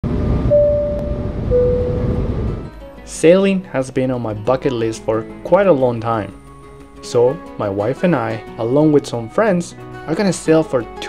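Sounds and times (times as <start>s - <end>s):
jet engine and airflow rumble: 0.1s - 2.7s
held chime tones: 0.5s - 2.2s.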